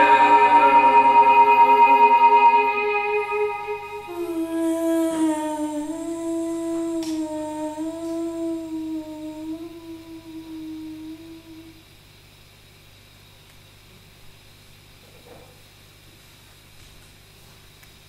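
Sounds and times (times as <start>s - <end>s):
woman singing a long note: 0.0s - 11.8s.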